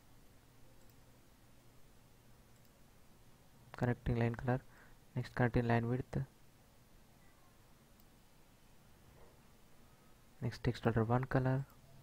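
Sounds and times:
faint room hum: 0.0s - 12.0s
computer mouse click: 0.8s - 1.0s, 2.5s - 2.8s.

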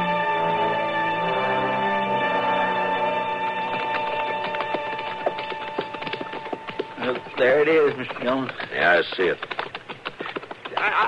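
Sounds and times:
sharp wooden knocks and clicks: 3.8s - 11.0s.

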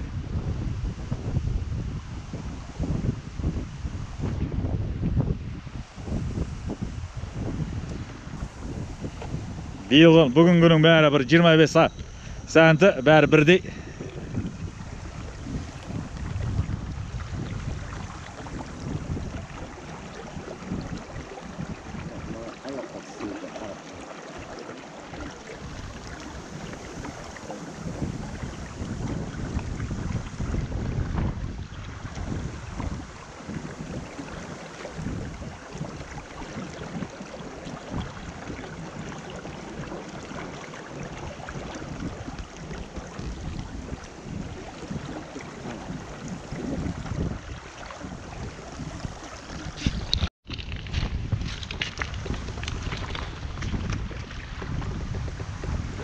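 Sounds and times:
shallow river water flowing: 0.0s - 56.0s
wind buffeting microphone: 0.0s - 56.0s.

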